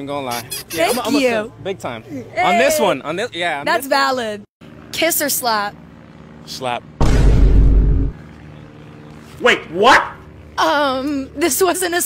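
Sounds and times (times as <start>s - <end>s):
loud deep boom: 7.0s - 8.2s.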